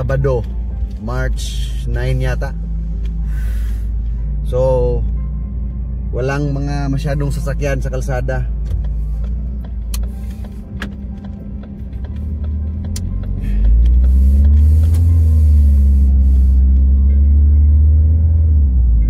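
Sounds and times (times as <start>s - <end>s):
car engine and road noise: 0.0s - 19.0s
deep rumble: 0.0s - 19.0s.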